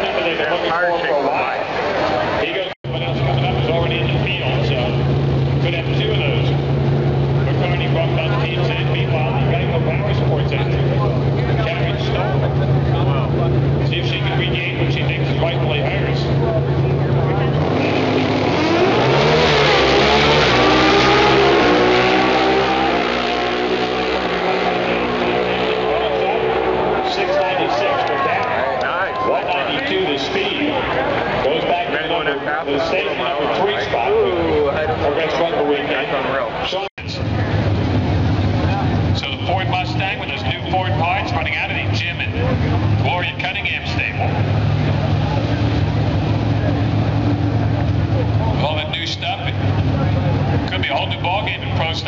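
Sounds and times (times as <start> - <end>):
announcer voice: 0.0 - 6.7, 7.4 - 37.4, 38.7 - 44.5, 48.2 - 52.0
drag racing engines revving: 0.0 - 52.0
faint crowd voices: 0.0 - 52.0.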